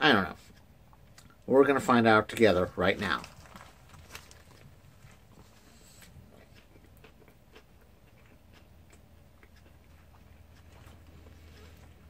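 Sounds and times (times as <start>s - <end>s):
person chewing: 3.0s - 12.0s.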